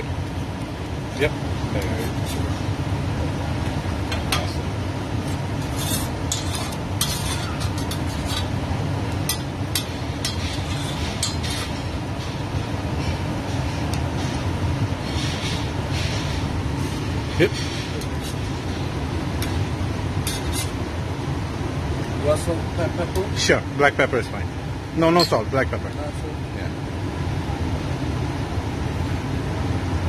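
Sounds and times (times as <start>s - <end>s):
low background hum: 0.0s - 30.0s
metal spatula scraping griddle: 5.2s - 8.6s, 9.3s - 12.0s, 15.0s - 18.7s, 20.2s - 20.8s.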